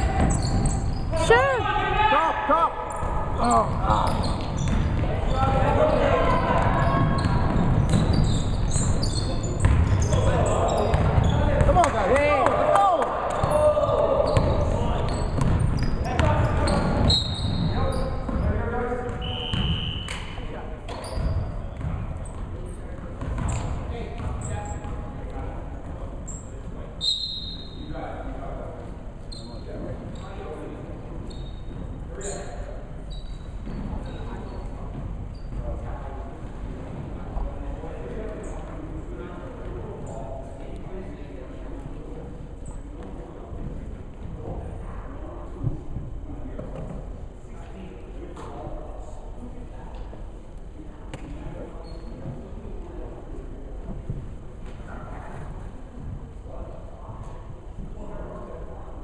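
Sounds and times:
players shouting: 1.1s - 4.1s
basketball bouncing on hardwood floor: 9.6s - 10.0s, 10.9s - 11.7s, 15.4s - 16.4s.

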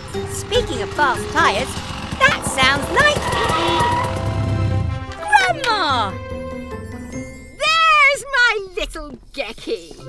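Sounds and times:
motorcycle engine rumble: 0.0s - 5.2s
background music: 0.0s - 8.4s.

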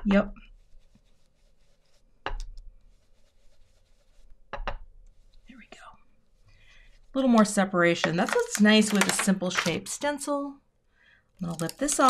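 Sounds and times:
brush rubbing on card: 0.4s - 4.5s, 5.1s - 7.2s.

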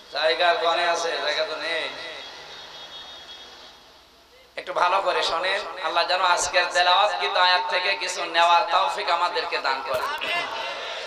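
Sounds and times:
amplified voice echoing: 4.8s - 11.0s.

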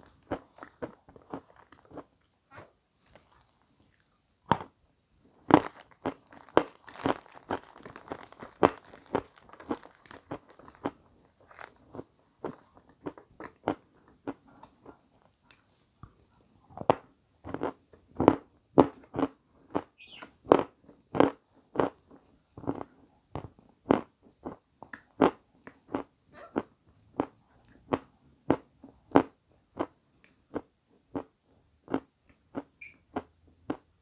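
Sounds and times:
person chewing with wet smacks: 0.0s - 4.8s, 5.4s - 34.0s.

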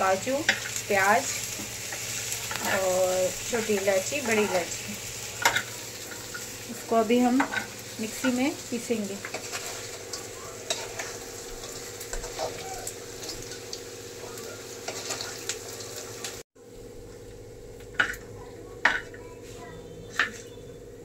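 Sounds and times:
food deep-frying in hot oil: 0.0s - 16.4s
onions frying: 0.0s - 21.0s.

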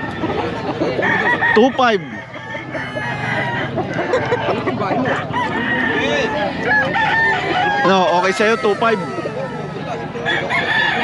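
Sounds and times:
chickens clucking: 0.0s - 11.0s
roosters crowing: 5.0s - 11.0s.

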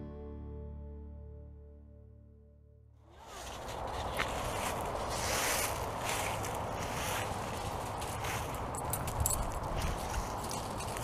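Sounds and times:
dry leaves rustling and crunching: 3.1s - 11.0s.

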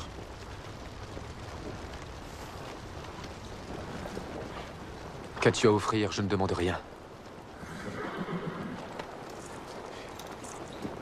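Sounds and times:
low outdoor background: 0.0s - 11.0s
horse whinnying: 7.6s - 9.0s.

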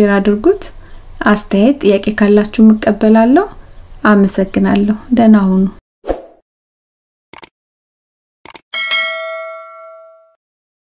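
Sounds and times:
bell-like ding: 8.8s - 10.4s.

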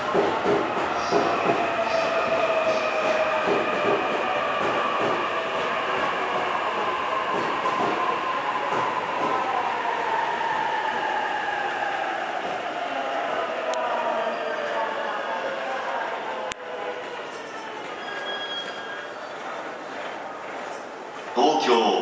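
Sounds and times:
train wheels rolling on rails: 0.0s - 21.7s.

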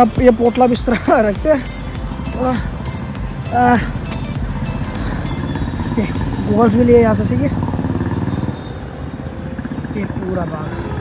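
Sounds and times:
person speaking: 0.0s - 2.8s
motorcycle-like engine running: 0.8s - 11.0s.

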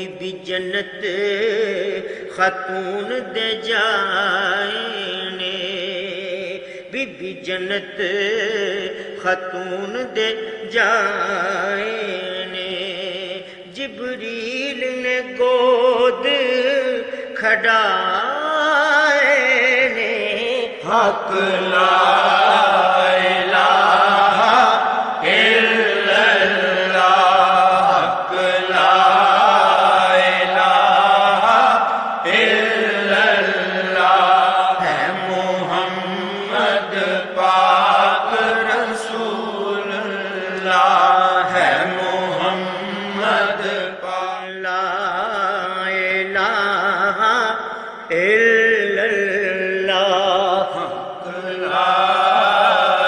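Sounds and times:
devotional chanting: 0.0s - 53.0s.

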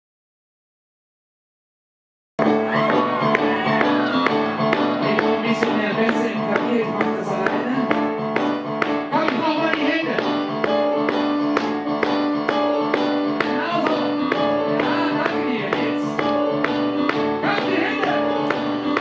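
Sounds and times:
keyboard chords: 2.4s - 19.0s.

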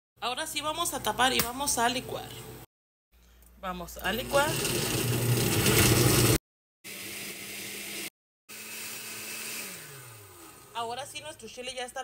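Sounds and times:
blender motor running: 4.1s - 11.1s.

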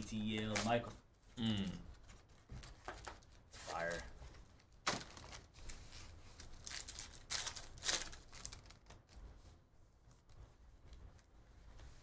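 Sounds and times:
card pack wrappers crinkling: 2.2s - 9.2s.

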